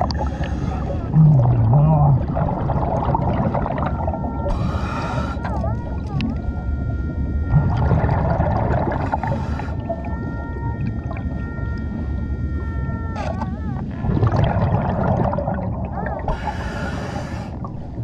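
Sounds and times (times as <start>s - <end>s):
diver breathing underwater: 0.0s - 1.2s, 4.5s - 5.5s, 8.1s - 10.0s, 16.2s - 18.0s
low wavering hum: 0.0s - 18.0s
exhaust bubbles rushing: 1.1s - 4.2s, 7.5s - 10.0s, 14.0s - 16.3s.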